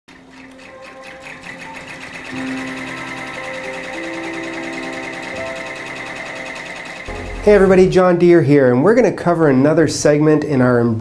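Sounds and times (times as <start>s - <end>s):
sewing machine stitching: 0.1s - 7.8s.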